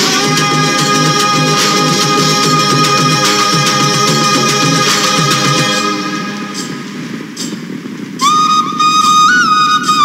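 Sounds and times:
rushing noisy hiss: 0:00.0 - 0:10.0
flute long held note: 0:08.2 - 0:10.0.

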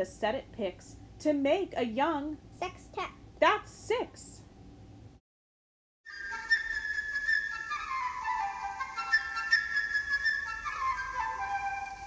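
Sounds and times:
flute melody: 0:06.1 - 0:12.0.

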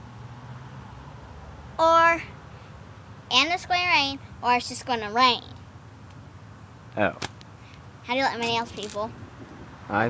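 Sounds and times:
man talking: 0:07.0 - 0:07.2.

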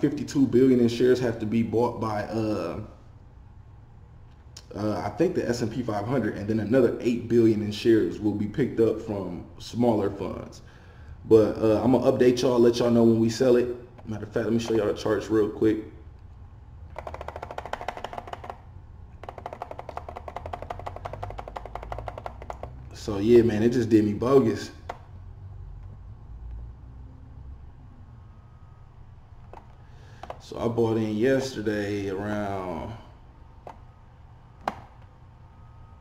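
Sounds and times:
faint low room hum: 0:00.0 - 0:36.0
mouse scroll wheel clicking: 0:16.9 - 0:18.6, 0:19.2 - 0:22.8.

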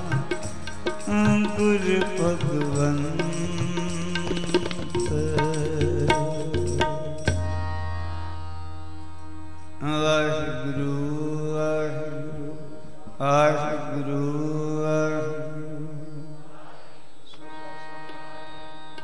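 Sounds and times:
man singing: 0:00.0 - 0:07.4, 0:09.8 - 0:16.4
harmonium sustained notes: 0:00.0 - 0:19.0.

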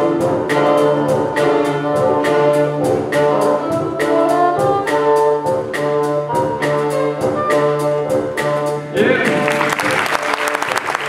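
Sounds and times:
orchestral ensemble playing chords: 0:00.0 - 0:11.0.

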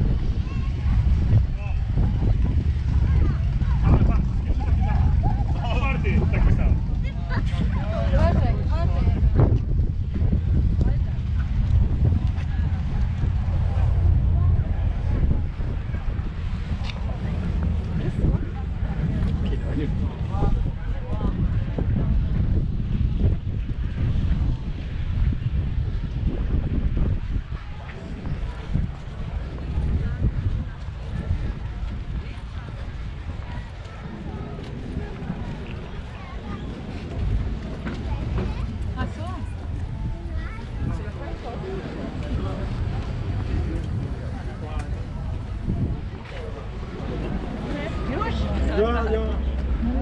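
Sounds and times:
faint voices of people: 0:00.0 - 0:50.0
people chattering: 0:00.0 - 0:50.0
wind buffeting microphone: 0:00.0 - 0:50.0.

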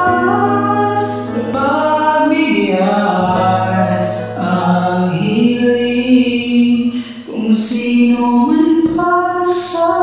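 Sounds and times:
backing track: 0:00.0 - 0:10.0
person singing karaoke: 0:00.0 - 0:10.0.

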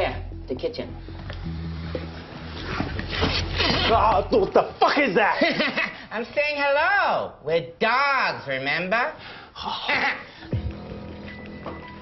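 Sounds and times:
low music drone: 0:00.0 - 0:04.4, 0:10.5 - 0:12.0.

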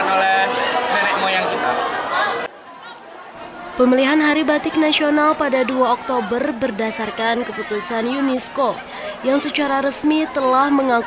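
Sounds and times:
faint crowd chatter: 0:00.0 - 0:11.0.

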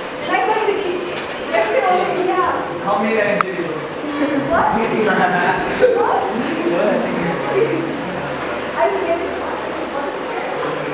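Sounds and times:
people laughing and chattering: 0:00.0 - 0:10.9.

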